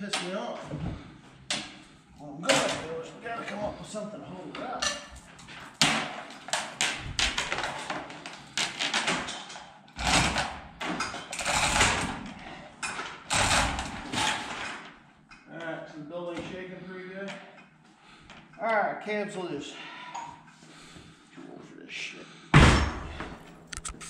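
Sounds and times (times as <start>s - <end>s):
metal chain rattling and clanking: 8.6s - 14.9s.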